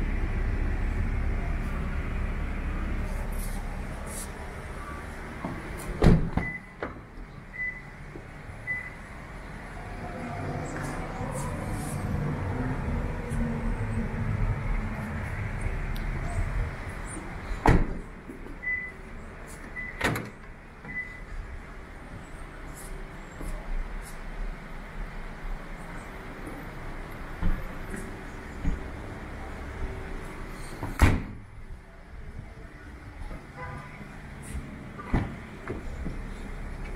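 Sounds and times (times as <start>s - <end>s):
car doors shutting with thuds: 5.4s - 7.1s, 17.6s - 18.9s, 27.4s - 29.0s, 30.8s - 31.5s, 35.0s - 36.3s
low rumbling handling noise: 26.3s - 32.6s.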